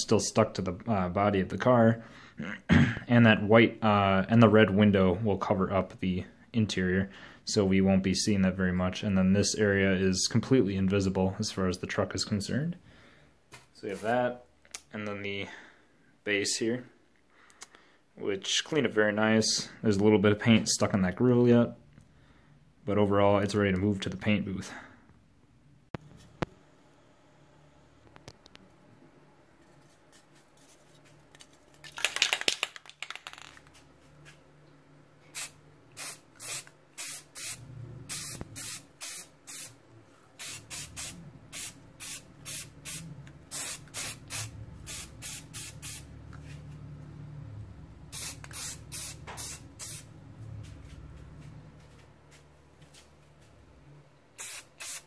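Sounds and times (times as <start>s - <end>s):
faint low hum: 33.5s - 54.5s
spray can hissing bursts: 35.3s - 39.8s, 40.4s - 46.1s, 48.1s - 50.1s, 54.4s - 55.0s.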